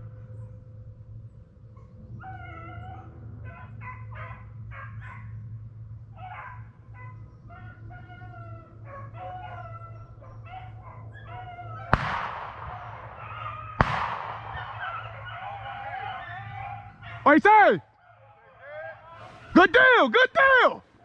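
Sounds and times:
low hum: 0.0s - 18.0s
hounds baying: 0.0s - 21.0s.

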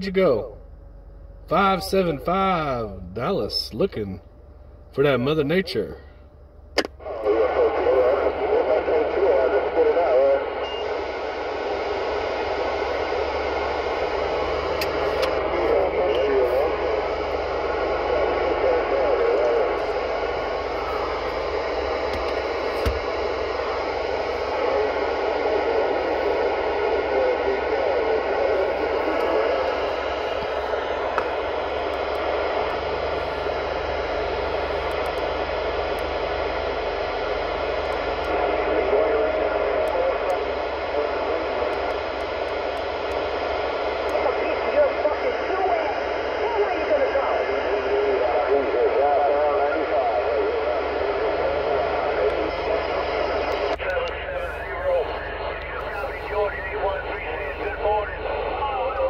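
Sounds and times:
radio static: 6.8s - 59.0s
faint distant radio voices: 7.0s - 36.2s, 36.8s - 59.0s.

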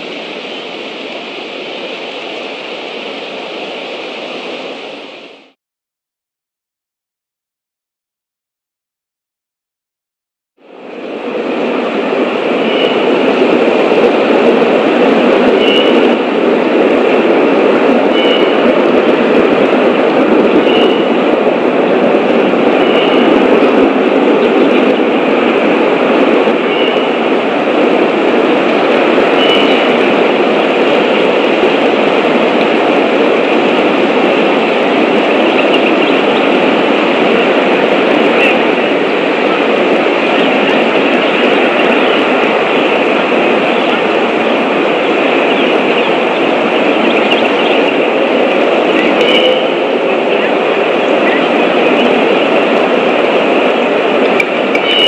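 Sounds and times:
loud steady rumbling: 0.0s - 5.6s, 10.6s - 55.0s.

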